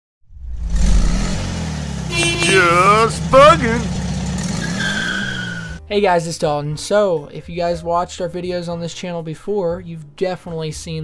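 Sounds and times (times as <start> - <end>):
car engine running: 0.9 - 5.8.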